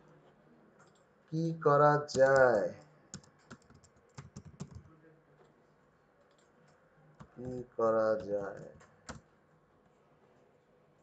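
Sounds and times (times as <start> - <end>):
computer keyboard typing: 2.1 - 4.9, 7.2 - 9.3.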